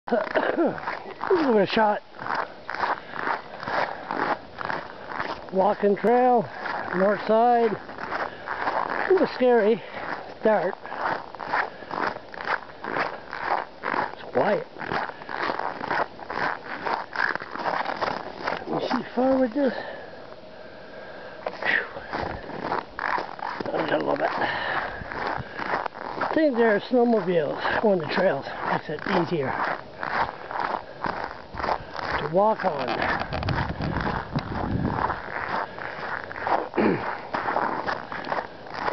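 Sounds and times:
footsteps crunching on snow: 0.1s - 20.2s, 21.3s - 38.9s.

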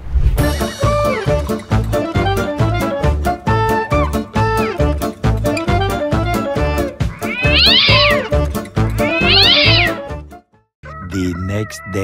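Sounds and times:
upbeat background music: 0.6s - 10.3s
cat meowing: 7.1s - 10.0s.

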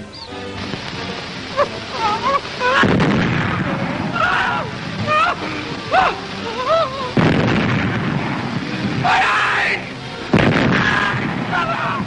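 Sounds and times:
artillery shell explosion: 2.7s - 5.1s, 7.1s - 9.1s, 9.7s - 12.0s.

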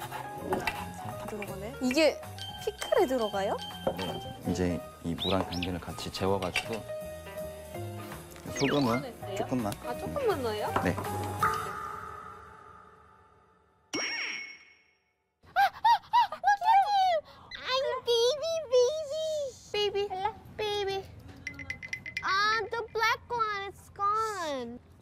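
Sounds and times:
squeaky cartoon voices chattering: 8.5s - 9.2s, 17.5s - 18.0s.

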